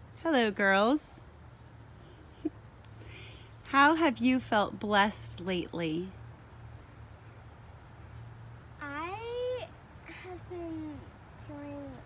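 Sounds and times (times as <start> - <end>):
insects chirping: 0.0 - 12.0
child murmuring: 8.8 - 12.0
child's rising wordless voice: 8.8 - 12.0.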